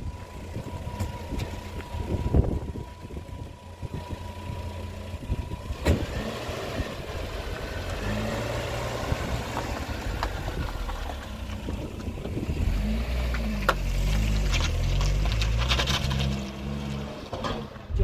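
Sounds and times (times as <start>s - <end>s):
car engine idling: 0.0s - 16.2s.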